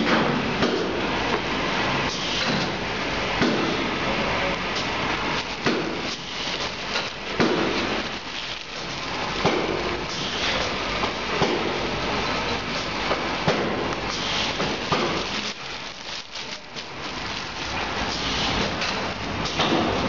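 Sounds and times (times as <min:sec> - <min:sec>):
plastic film rustling and crinkling: 0:00.8 - 0:20.0.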